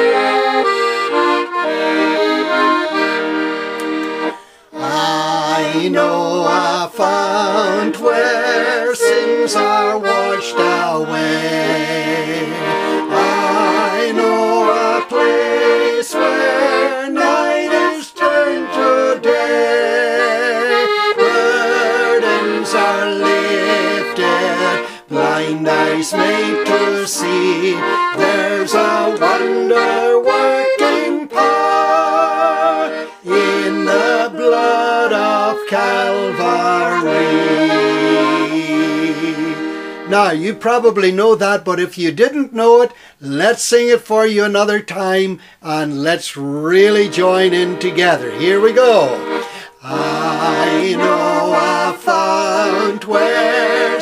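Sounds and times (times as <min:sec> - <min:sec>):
piano accordion: 0:00.0 - 0:41.6, 0:46.6 - 0:54.0
man and woman singing: 0:04.7 - 0:40.6, 0:46.0 - 0:54.0.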